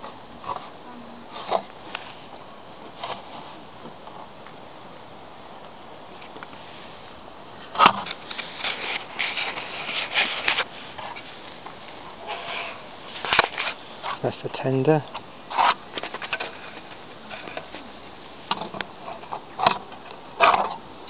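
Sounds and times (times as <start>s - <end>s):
plastic packaging crackling: 7.7s - 14.3s, 14.9s - 20.5s.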